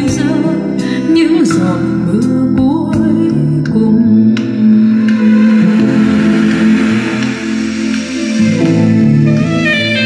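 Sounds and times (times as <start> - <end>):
instrumental music over loudspeakers: 0.0 - 10.0.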